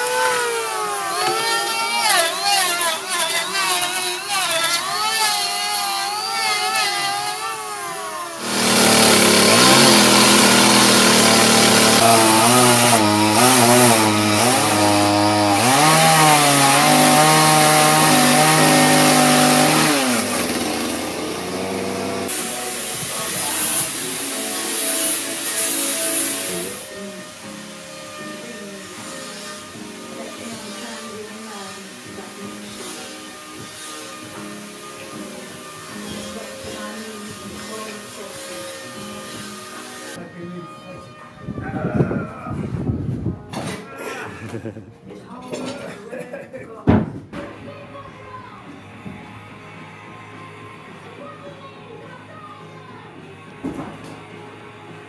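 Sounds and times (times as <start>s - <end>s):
chainsaw cutting wood: 0.0s - 40.2s
electric hand planer whining: 0.0s - 40.2s.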